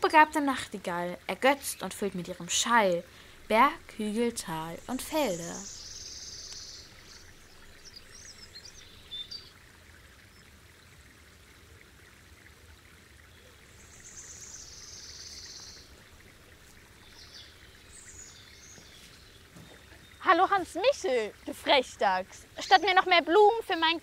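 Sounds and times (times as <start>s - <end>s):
birds chirping: 0.0s - 9.6s, 13.2s - 24.0s
low steady hiss: 0.0s - 24.0s
high bird trill: 3.4s - 9.5s.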